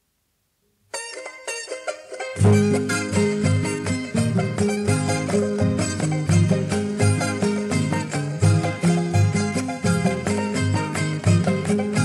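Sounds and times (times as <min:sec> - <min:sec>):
plucked string instrument: 0:00.9 - 0:12.0.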